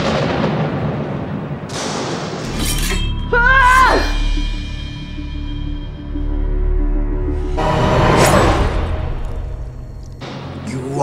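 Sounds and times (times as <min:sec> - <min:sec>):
dramatic music: 0:01.7 - 0:11.0.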